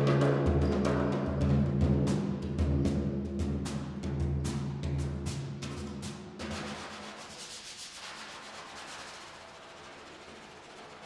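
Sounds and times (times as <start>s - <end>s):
frame drum stroke: 0.0s - 11.0s
hand rubbing drum head: 5.7s - 11.0s.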